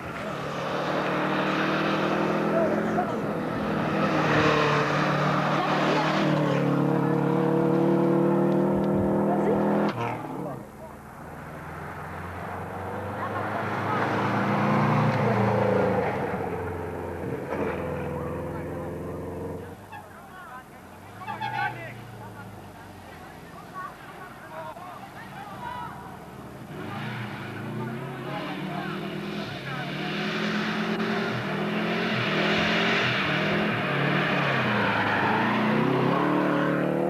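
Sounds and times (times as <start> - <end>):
rally car engine revving: 0.0 - 19.8, 26.1 - 37.0.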